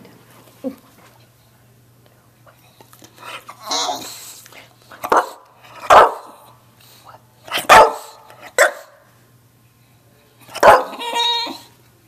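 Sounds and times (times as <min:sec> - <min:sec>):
dog barking: 0:05.0 - 0:06.4, 0:07.5 - 0:09.0, 0:10.5 - 0:11.3.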